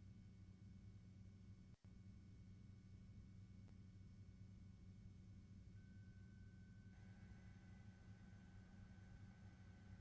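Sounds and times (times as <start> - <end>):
faint low hum: 0.0 - 10.0
thin steady high tone: 2.2 - 10.0.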